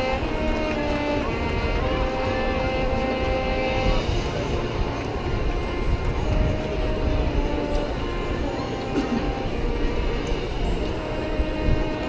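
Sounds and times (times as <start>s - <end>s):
crowd murmur: 0.0s - 12.0s
marching band playing chords: 0.0s - 12.0s.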